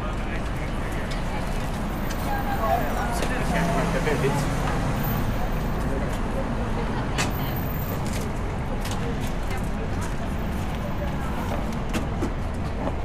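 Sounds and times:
passersby talking: 0.0s - 13.0s
traffic rumble: 0.0s - 13.0s.

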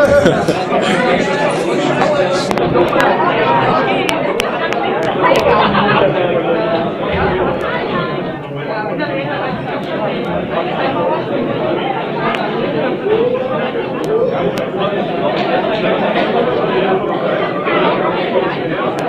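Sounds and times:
crowd babble: 0.0s - 19.0s.

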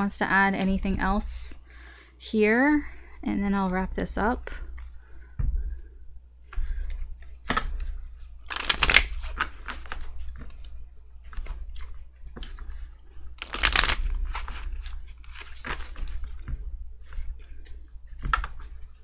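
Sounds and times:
cards being shuffled: 6.6s - 19.0s.

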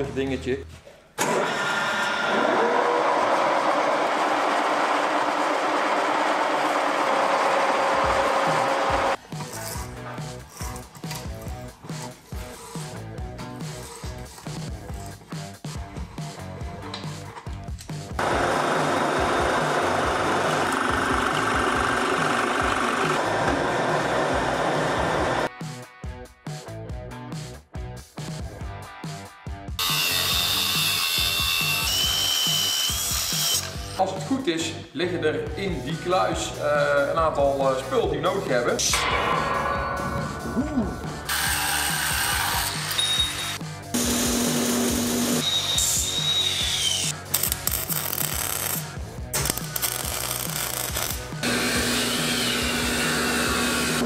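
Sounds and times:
background music with a beat: 8.5s - 18.2s, 25.5s - 29.8s, 35.7s - 44.0s
angle grinder cutting steel: 18.2s - 25.5s, 29.8s - 34.0s, 38.9s - 54.0s
metal lathe machining steel: 51.4s - 54.0s.

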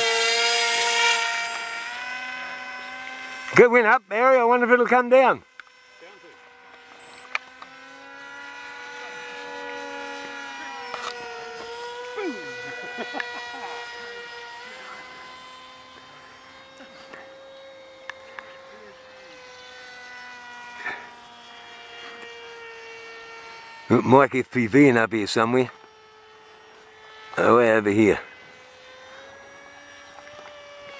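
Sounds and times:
model plane motor buzzing: 0.0s - 30.9s.

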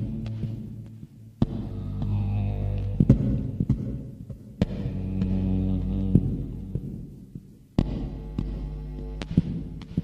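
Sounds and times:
low bass drone: 0.0s - 4.0s, 4.6s - 10.0s.

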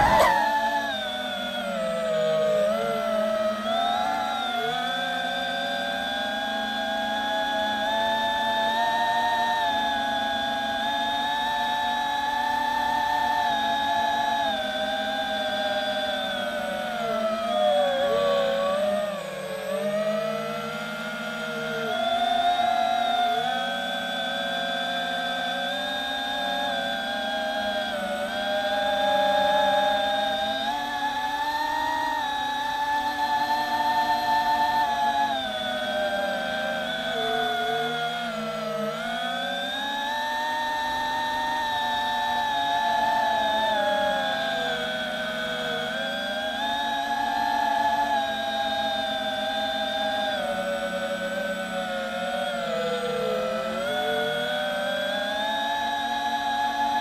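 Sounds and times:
drone propellers whining: 0.0s - 57.0s.

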